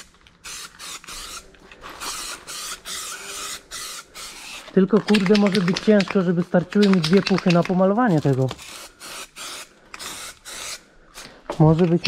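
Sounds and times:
aerosol spray can hissing: 0.0s - 1.4s, 2.0s - 4.7s, 8.6s - 11.3s.

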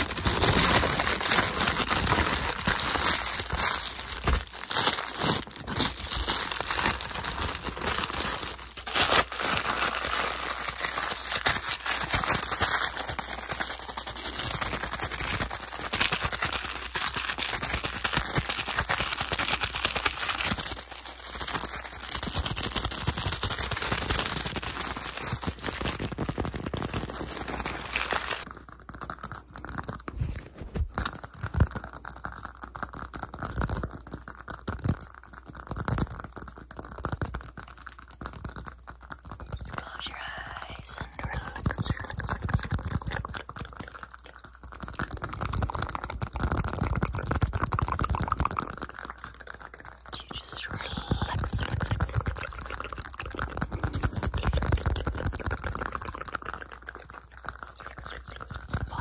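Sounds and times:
rubbing and crinkling on a cup: 0.0s - 59.0s.

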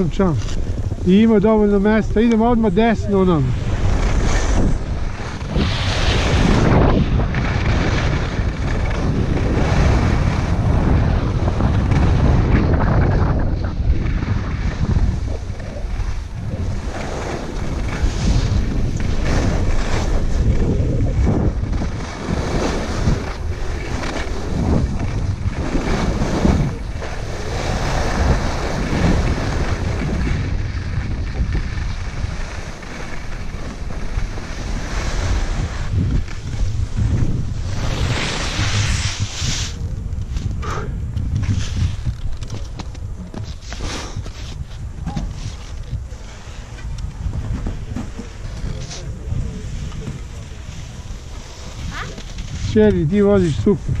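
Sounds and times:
skis scraping on packed snow: 0.0s - 40.6s, 41.2s - 54.0s
wind buffeting microphone: 0.0s - 54.0s.

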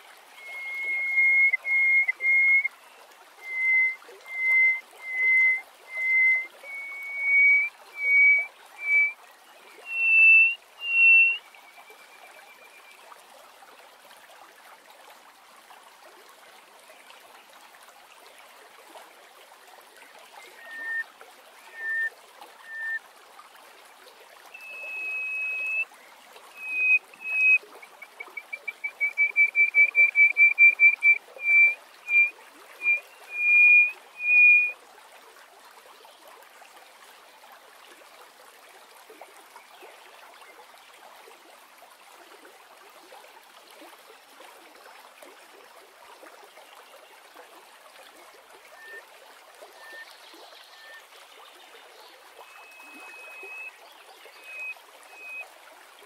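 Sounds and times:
faint steady hiss: 0.0s - 34.8s
bird singing whistled notes: 0.4s - 2.7s, 3.4s - 9.2s, 9.8s - 12.9s, 20.5s - 21.0s, 21.7s - 23.0s, 24.6s - 25.9s, 26.6s - 34.7s, 48.8s - 49.0s, 49.8s - 51.1s, 52.4s - 55.4s.

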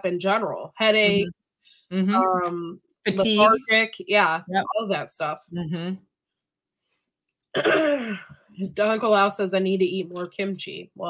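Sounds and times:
woman clearing throat: 7.6s - 8.3s.

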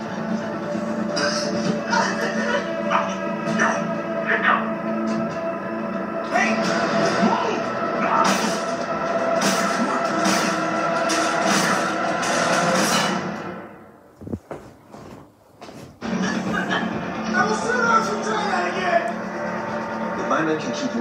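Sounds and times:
dramatic television score: 0.0s - 21.0s.

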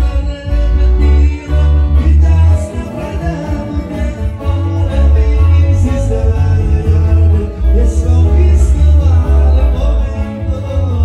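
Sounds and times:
acoustic guitar picking lead lines: 0.0s - 11.0s
deep pulsing bass: 0.0s - 11.0s.

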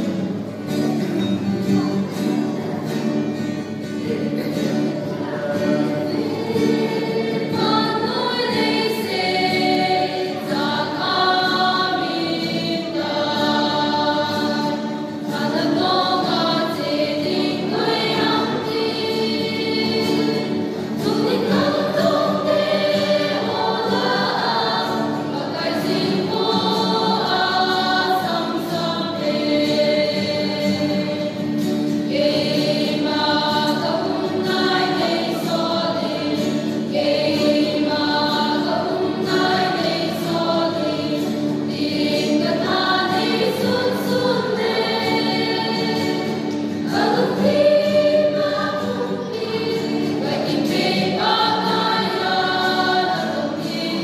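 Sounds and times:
acoustic guitar: 0.0s - 54.0s
mixed choir singing a hymn: 0.0s - 54.0s.

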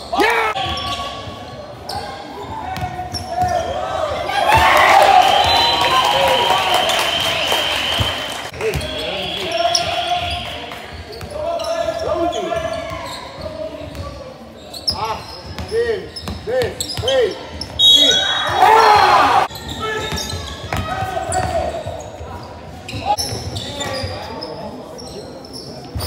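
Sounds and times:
people shouting: 17.8s - 19.5s.

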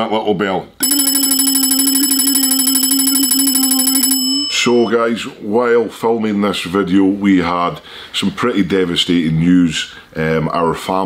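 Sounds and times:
electric bell ringing: 0.8s - 4.9s.

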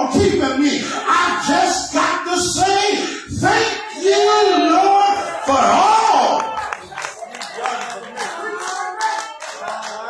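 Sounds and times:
congregation clapping: 6.2s - 10.0s.

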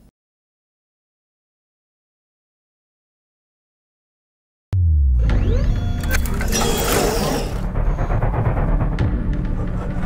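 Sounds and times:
deep boom and low drone: 4.8s - 6.6s, 7.5s - 10.0s.

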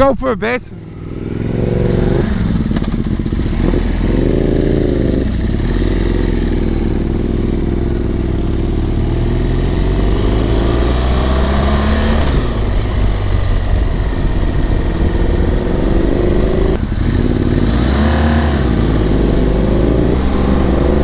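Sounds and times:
motorcycle engine accelerating: 0.8s - 21.0s.

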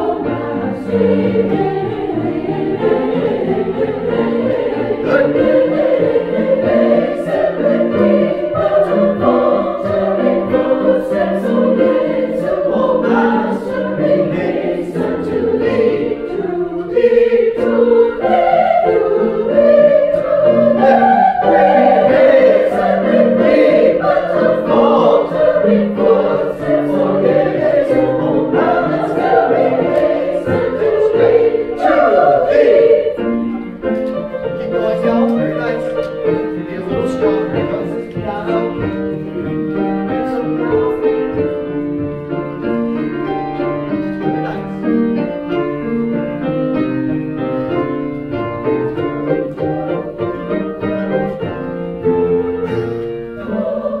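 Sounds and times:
choir singing: 0.0s - 46.5s, 47.8s - 54.0s
grand piano playing chords: 0.0s - 54.0s.

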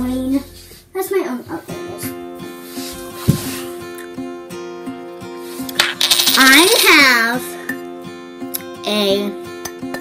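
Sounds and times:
guitar music: 0.0s - 10.0s
coin rattling on hard surface: 5.8s - 7.1s.

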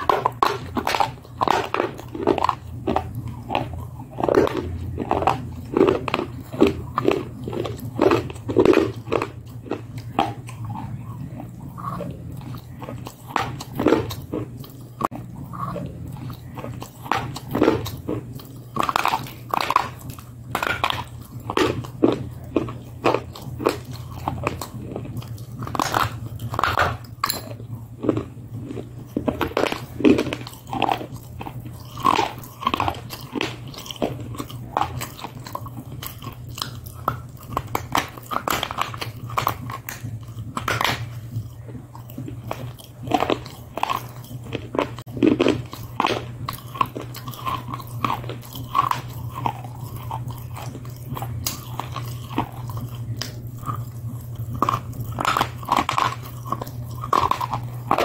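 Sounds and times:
crunching and chewing: 0.0s - 58.0s
steady low hum: 0.0s - 58.0s.

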